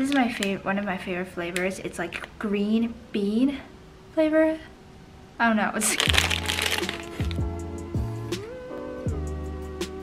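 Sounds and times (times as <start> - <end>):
plastic wrapper tearing: 5.8 - 7.5
background music: 6.0 - 10.0.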